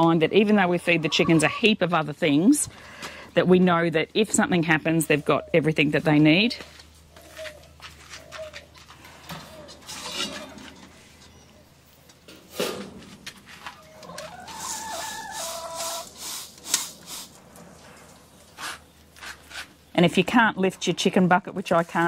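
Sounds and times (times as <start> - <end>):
hen clucking: 0.0 - 1.9, 13.6 - 16.3
metal feeder clinking and scraping: 8.9 - 11.4.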